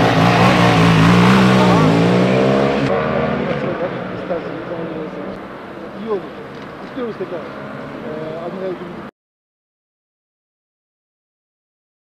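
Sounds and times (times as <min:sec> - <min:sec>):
motorcycle engines riding off: 0:00.0 - 0:09.1.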